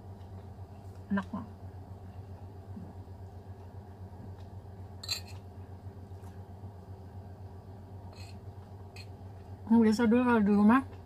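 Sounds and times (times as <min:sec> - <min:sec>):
low steady room hum: 0:00.0 - 0:11.0.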